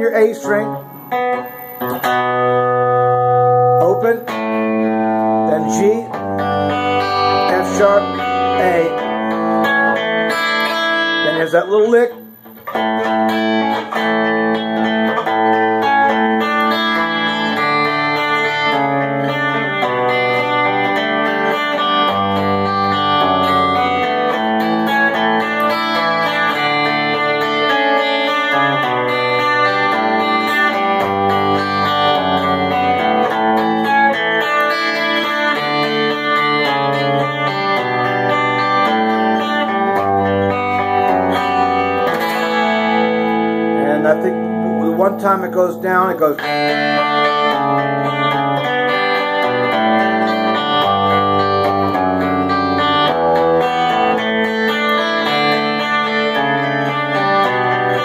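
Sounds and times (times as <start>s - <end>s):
fingerpicked electric guitar: 0.0s - 58.0s.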